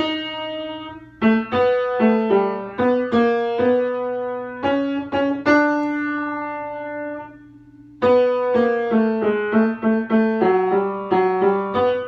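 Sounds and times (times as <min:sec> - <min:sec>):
piano note: 0:00.0 - 0:12.0.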